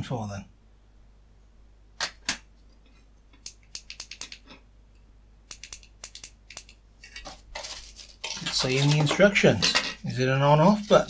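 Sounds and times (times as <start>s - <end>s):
plastic parts clicking and clattering: 6.1s - 10.1s.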